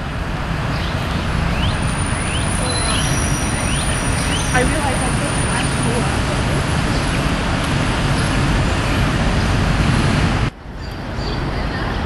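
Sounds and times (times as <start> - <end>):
low rumble of road traffic: 0.0 - 12.0
bird chirping: 0.7 - 6.0.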